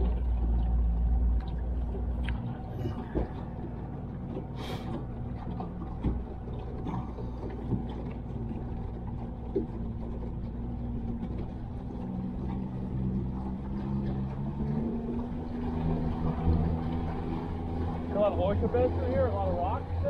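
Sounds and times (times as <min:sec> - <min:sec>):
outboard motor humming: 0:00.0 - 0:20.0
water noise: 0:00.0 - 0:20.0.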